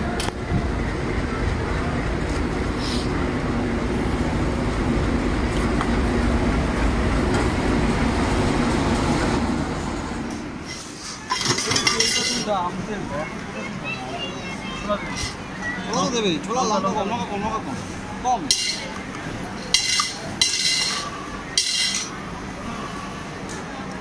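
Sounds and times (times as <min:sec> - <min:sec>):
train wheels rattling on rails: 0:03.4 - 0:12.8, 0:18.4 - 0:22.2.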